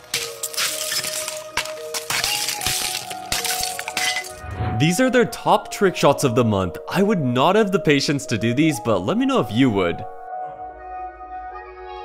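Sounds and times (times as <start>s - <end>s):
hammer cracking ice shell: 0.0s - 4.4s
ice chunks clinking: 0.0s - 4.4s.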